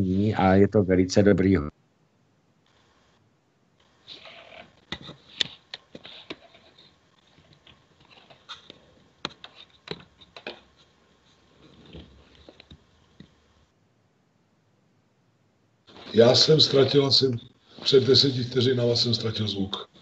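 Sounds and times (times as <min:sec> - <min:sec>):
faint clicks and knocks: 0:11.6 - 0:13.6.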